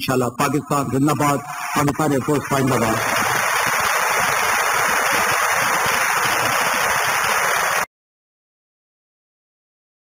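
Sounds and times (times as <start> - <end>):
audience applauding: 1.5 - 7.9.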